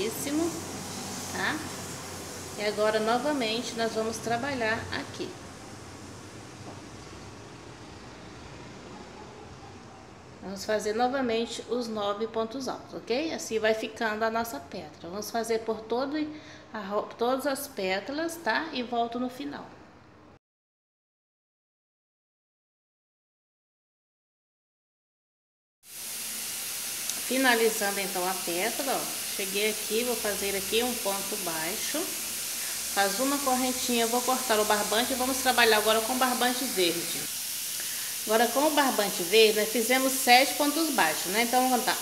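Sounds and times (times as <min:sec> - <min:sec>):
recording hiss: 0:00.0 - 0:08.8, 0:25.8 - 0:42.0.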